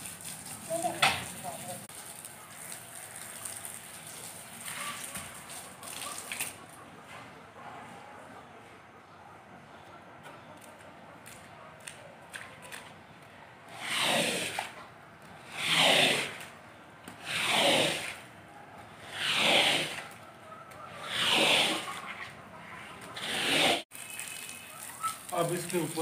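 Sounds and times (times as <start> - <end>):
squeegee swishing over wet carpet: 13.7 - 14.8, 15.4 - 16.5, 17.2 - 18.3, 19.0 - 20.2, 20.9 - 25.7.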